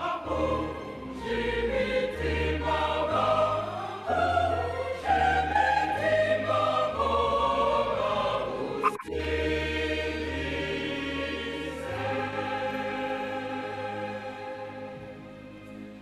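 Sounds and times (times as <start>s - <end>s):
choir singing a hymn: 0.0s - 16.0s.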